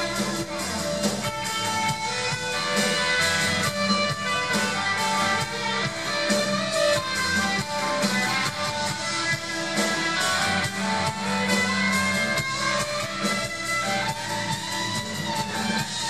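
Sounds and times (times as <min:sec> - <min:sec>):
instrumental rock band playing: 0:00.0 - 0:16.0.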